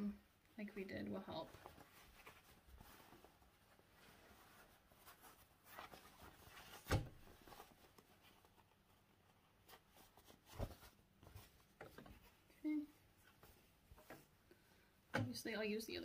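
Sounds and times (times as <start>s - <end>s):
fabric rustling: 1.3s - 14.4s.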